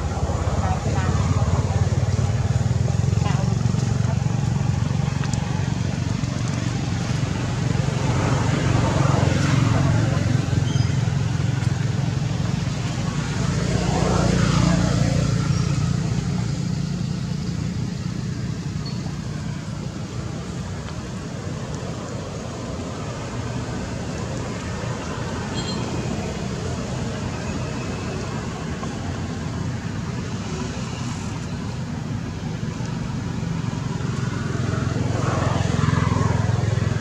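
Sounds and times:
vehicle engines rumbling: 0.0s - 37.0s
vehicles passing: 0.0s - 37.0s.

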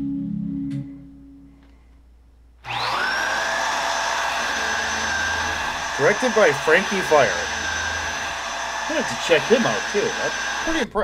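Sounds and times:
vacuum cleaner motor running: 2.6s - 10.9s.

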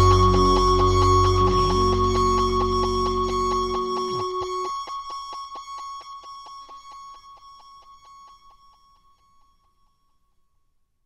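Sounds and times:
pulsing high note: 0.0s - 4.8s.

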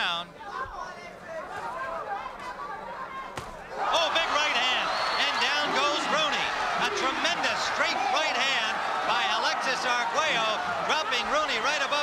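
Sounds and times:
crowd shouting and cheering: 0.4s - 12.0s.

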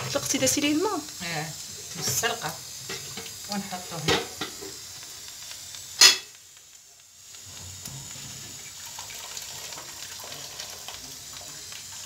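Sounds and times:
liquid boiling in a pot: 0.0s - 12.0s.

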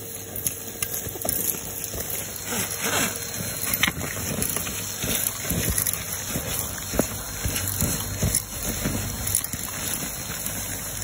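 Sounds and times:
soil and grit crackling up tube: 0.0s - 11.0s
vacuum cleaner running: 0.0s - 11.0s.

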